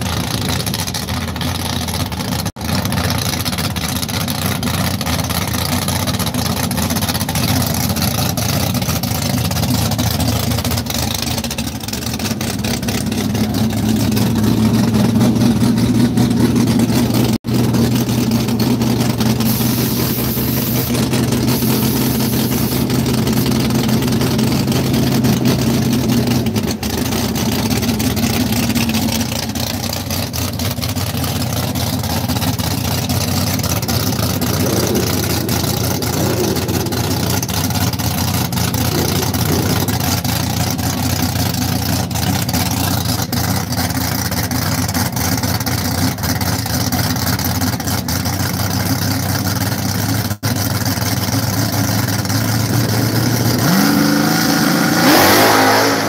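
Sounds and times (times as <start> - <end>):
car engine idling: 0.0 - 56.0
car engine revving: 11.9 - 30.0, 30.6 - 41.1, 50.5 - 56.0.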